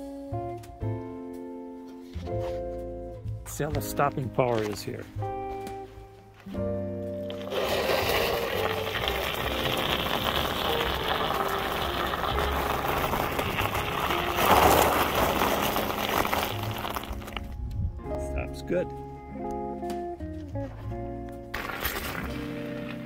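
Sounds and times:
background music: 0:00.0 - 0:23.0
tires rolling over icy snow: 0:07.2 - 0:17.6, 0:21.5 - 0:23.0.

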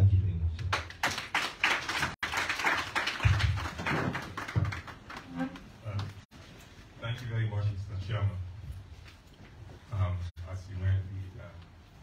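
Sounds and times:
people applauding: 0:00.6 - 0:06.2.

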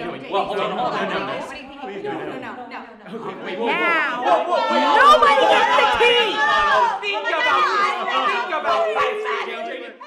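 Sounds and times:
people shouting in an argument: 0:03.5 - 0:10.0.

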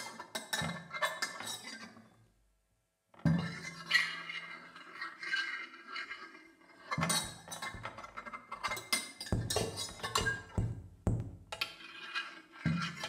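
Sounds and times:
low knocks: 0:09.3 - 0:11.6.

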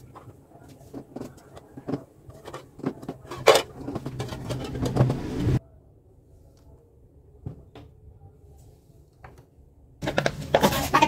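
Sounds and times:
eggs knocking and rustling: 0:00.0 - 0:05.3, 0:10.0 - 0:11.0.

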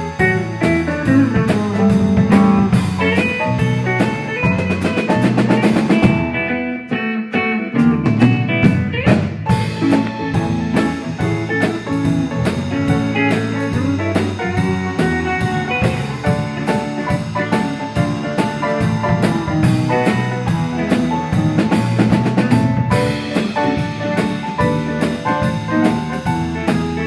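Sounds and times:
bass guitar: 0:00.0 - 0:27.0
drum kit: 0:00.0 - 0:27.0
electric guitar: 0:00.0 - 0:27.0
keyboard: 0:00.0 - 0:27.0.

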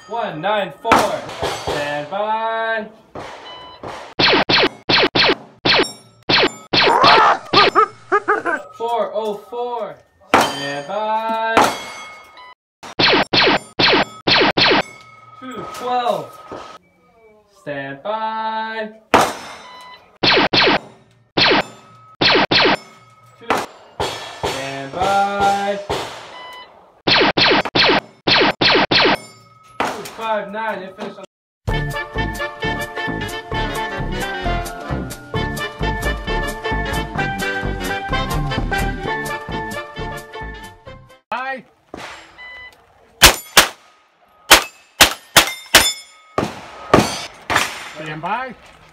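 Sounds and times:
rapid gunshots: 0:03.2 - 0:07.0, 0:12.9 - 0:14.8, 0:20.2 - 0:22.8, 0:27.1 - 0:29.2
scratchy sound effect bursts: 0:04.2 - 0:07.5, 0:20.2 - 0:20.8, 0:22.2 - 0:22.8, 0:27.1 - 0:29.2
steel plates ringing: 0:10.3 - 0:12.5, 0:13.6 - 0:17.1, 0:20.9 - 0:26.4, 0:29.1 - 0:30.0, 0:43.2 - 0:43.8, 0:44.4 - 0:48.1
carbine shots: 0:43.2 - 0:48.1.

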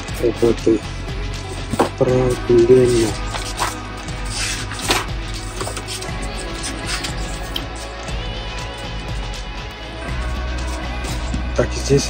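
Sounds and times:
paper pages flipping: 0:03.3 - 0:07.1.

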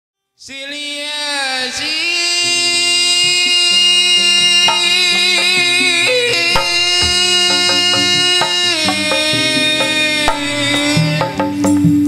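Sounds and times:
band music with long held note: 0:02.4 - 0:12.0.

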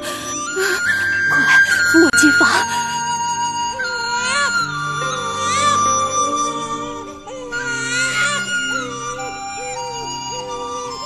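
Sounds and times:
newborn baby crying: 0:00.0 - 0:10.2
soft flute music: 0:00.0 - 0:11.0.

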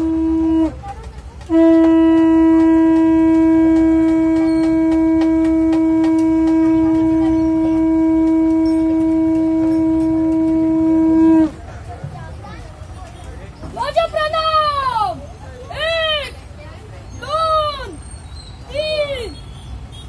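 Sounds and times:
conch shell blown: 0:00.0 - 0:00.9, 0:01.5 - 0:11.6.

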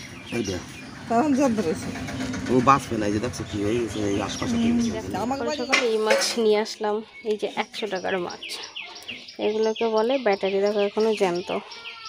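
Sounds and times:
people talking: 0:00.3 - 0:08.7, 0:09.4 - 0:11.8.

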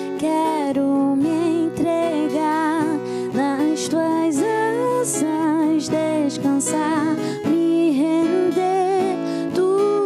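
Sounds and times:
strummed acoustic guitar: 0:00.0 - 0:10.0
woman singing: 0:00.0 - 0:10.0.

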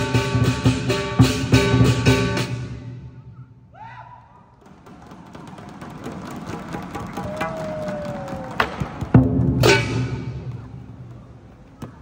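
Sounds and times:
lion dance drum gongs and cymbals: 0:00.0 - 0:03.2, 0:05.3 - 0:10.8.

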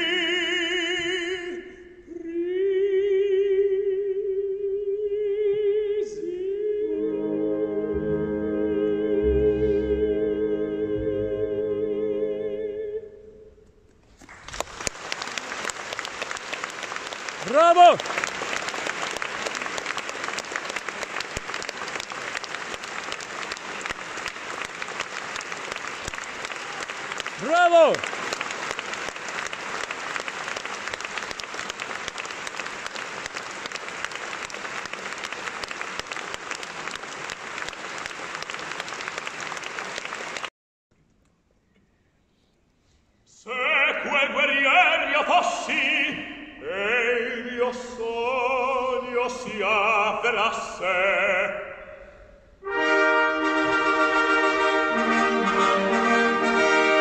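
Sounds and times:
audience applauding: 0:14.2 - 0:40.5
person shouting in audience: 0:17.4 - 0:18.0, 0:27.4 - 0:28.0.

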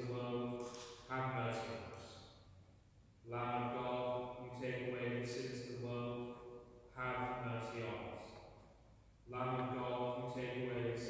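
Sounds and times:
priest chanting: 0:03.3 - 0:08.4, 0:09.3 - 0:11.0.

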